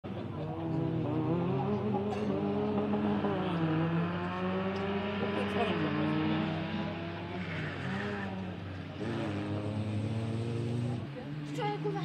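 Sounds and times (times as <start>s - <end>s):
rally car engine driven hard: 0.0s - 12.0s.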